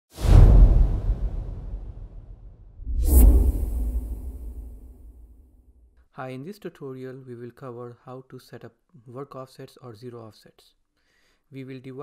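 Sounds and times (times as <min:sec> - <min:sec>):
bass-heavy whoosh: 0:00.2 - 0:05.8.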